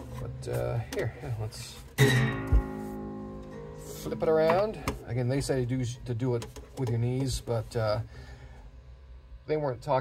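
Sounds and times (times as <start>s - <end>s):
dull thump of guitar body: 2.0s - 3.0s
guitar open strings ringing: 2.0s - 7.4s.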